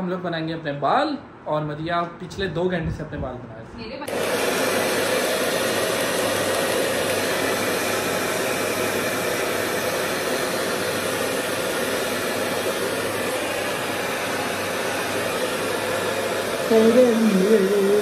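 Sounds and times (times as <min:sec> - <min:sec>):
hair dryer blowing: 0:04.0 - 0:18.0.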